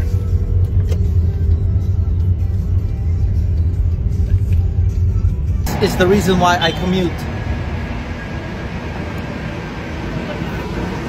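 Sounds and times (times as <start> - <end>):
faint steady whine: 5.7 - 11.0
train rumble and hiss: 5.7 - 11.0.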